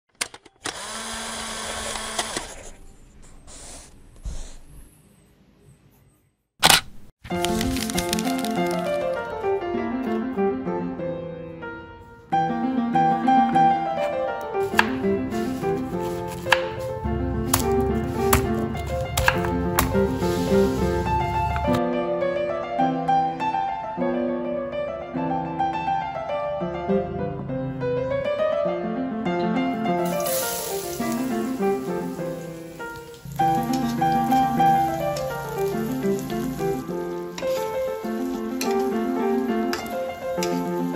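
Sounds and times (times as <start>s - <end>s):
small electric motor whirring: 0.6s - 2.8s
background music: 7.2s - 40.9s
knife chopping on wooden board: 14.6s - 15.0s, 16.0s - 16.9s, 17.5s - 20.2s.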